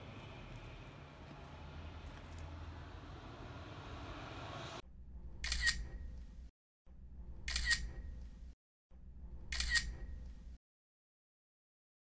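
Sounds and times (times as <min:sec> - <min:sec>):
camera shutter click: 0:05.4 - 0:05.8, 0:07.5 - 0:07.9, 0:09.5 - 0:10.0.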